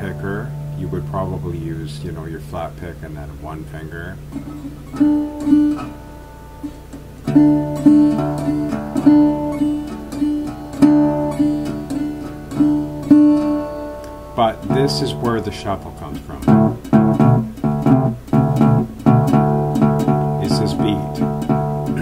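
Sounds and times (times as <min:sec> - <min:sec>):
resonator guitar fingerstyle: 0:00.0 - 0:22.0.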